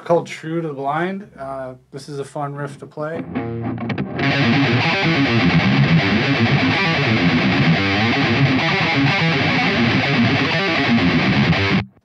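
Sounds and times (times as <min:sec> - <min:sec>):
distorted electric guitar riff: 0:03.2 - 0:12.0.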